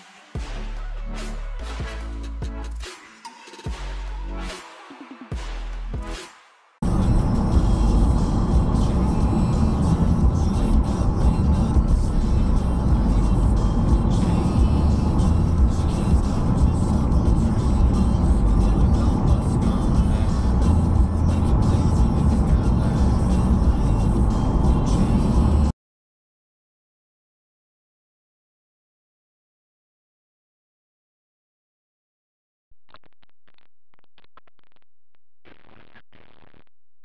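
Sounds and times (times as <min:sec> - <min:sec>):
music playing: 0:00.0 - 0:25.7
road and engine rumble: 0:06.8 - 0:25.7.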